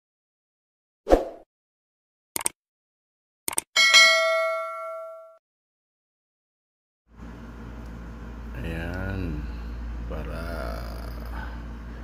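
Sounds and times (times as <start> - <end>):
bell ding: 3.8 - 5.4.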